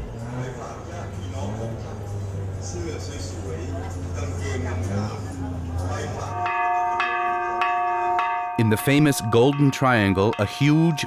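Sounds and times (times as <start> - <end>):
voices murmuring: 0.0 - 11.0
temple bell ringing: 5.8 - 11.0.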